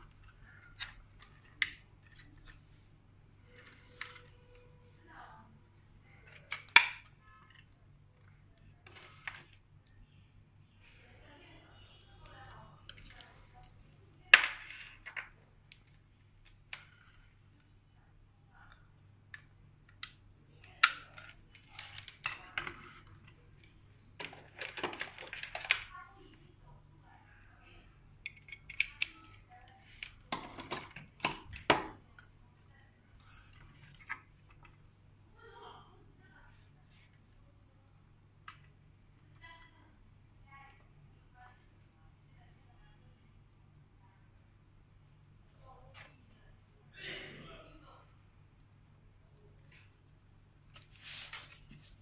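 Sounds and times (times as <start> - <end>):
faint steady low hum: 0.0 - 52.0.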